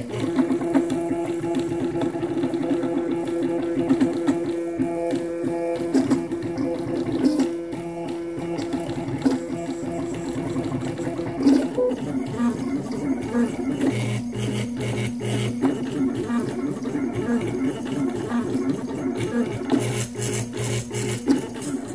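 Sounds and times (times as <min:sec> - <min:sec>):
stepper motors whining: 0:00.0 - 0:21.9.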